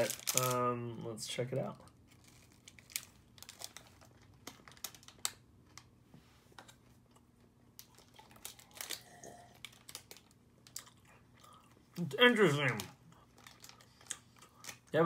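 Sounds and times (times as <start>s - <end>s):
wrapper crinkling: 0.0s - 0.7s, 1.3s - 5.9s, 7.8s - 11.0s, 12.0s - 15.0s
crunchy chewing: 7.1s - 12.0s.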